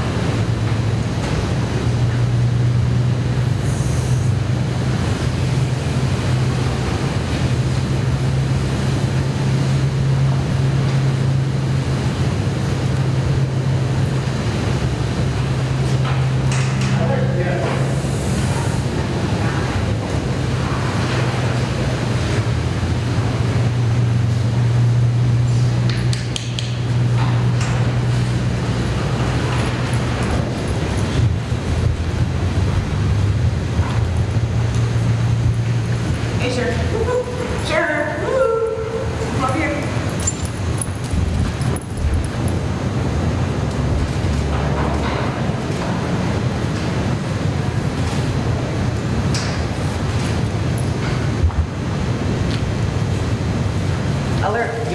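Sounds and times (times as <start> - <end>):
low mechanical hum: 0.0 - 54.9.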